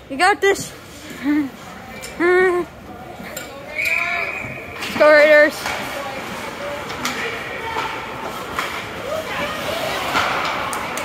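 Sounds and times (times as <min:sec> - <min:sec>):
spectator chatter: 0:00.0 - 0:11.0
hockey sticks clacking puck: 0:04.8 - 0:11.0.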